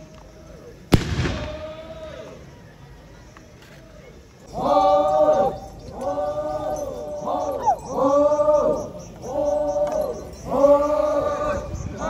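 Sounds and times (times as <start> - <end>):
loud bang with rolling echo: 0.9 - 2.2.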